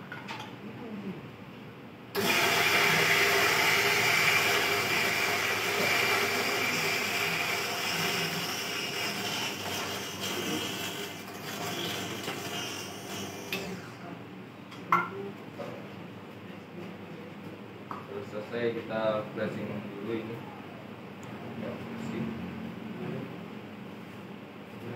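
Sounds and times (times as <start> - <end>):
electric coffee grinder grinding: 2.2 - 14.0.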